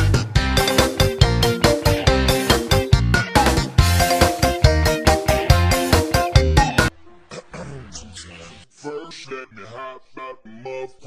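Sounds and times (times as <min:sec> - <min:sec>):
music: 0:00.0 - 0:08.6
person vocal sound: 0:06.6 - 0:11.0.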